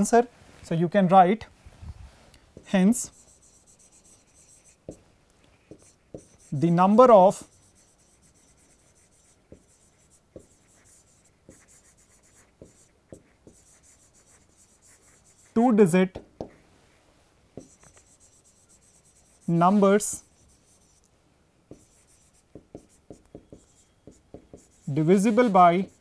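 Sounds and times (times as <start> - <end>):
chalk scratching on chalkboard: 2.6 - 5.0, 5.6 - 15.8, 17.6 - 21.1, 21.7 - 26.0
chalk tap on chalkboard: 4.6 - 5.0, 5.7 - 6.5, 7.7 - 16.6, 17.6 - 18.2, 21.7 - 25.0.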